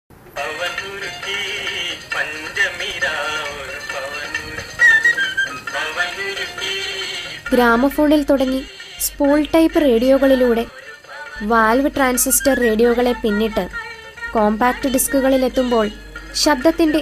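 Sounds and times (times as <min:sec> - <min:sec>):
song from vinyl record: 0:00.3 - 0:17.0
person talking: 0:07.5 - 0:10.7, 0:11.4 - 0:17.0.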